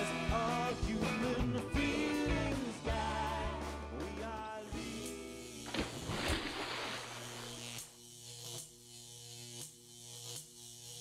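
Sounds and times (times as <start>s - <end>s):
fluorescent lights buzzing: 5.4s - 11.0s.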